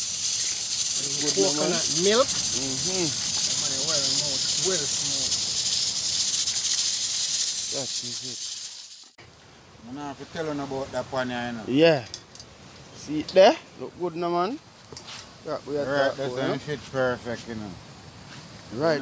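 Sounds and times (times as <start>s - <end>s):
steady high hiss: 0.0s - 19.0s
people talking: 1.0s - 5.4s, 7.7s - 8.4s, 9.8s - 12.1s, 15.5s - 17.8s, 18.7s - 19.0s.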